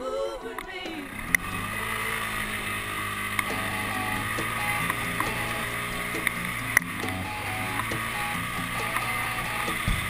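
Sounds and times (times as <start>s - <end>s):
atv engine running: 1.0s - 10.0s
sharp knocks over bumps: 9.6s - 10.0s.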